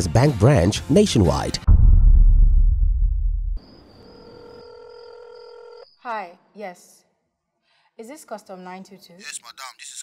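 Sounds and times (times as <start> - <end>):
deep low rumble: 1.7 - 3.6
telephone ringing tone: 4.2 - 5.9.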